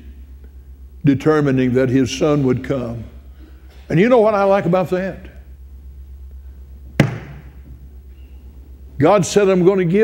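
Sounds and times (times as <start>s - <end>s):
steady low hum: 0.0s - 10.0s
hand slapping wooden pulpit: 7.0s - 7.5s.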